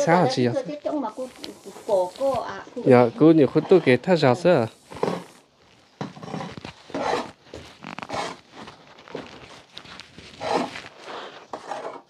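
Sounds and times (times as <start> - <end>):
hand scraping through dry meal: 0.0 - 12.0.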